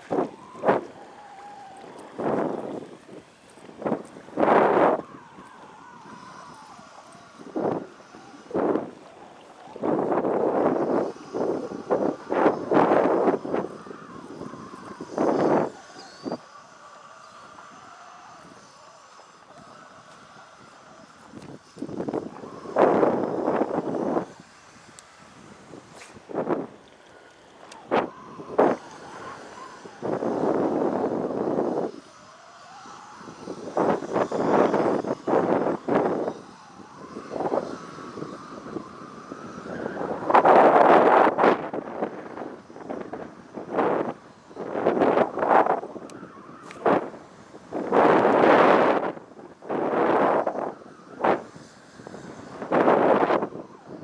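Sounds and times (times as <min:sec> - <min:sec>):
wind gusting on microphone: 0:00.0 - 0:54.0.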